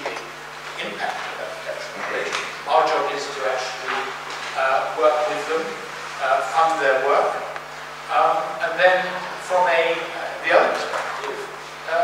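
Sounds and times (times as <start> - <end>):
man talking into a microphone: 0.0 - 7.5, 8.1 - 12.0.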